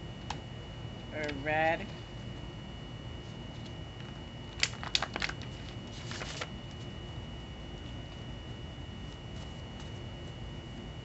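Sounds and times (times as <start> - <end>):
cards clicking and snapping: 4.6 - 5.4.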